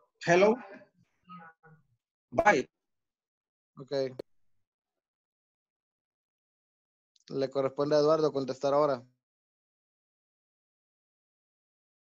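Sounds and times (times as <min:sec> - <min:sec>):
person's voice: 0:00.2 - 0:00.8, 0:02.4 - 0:02.6.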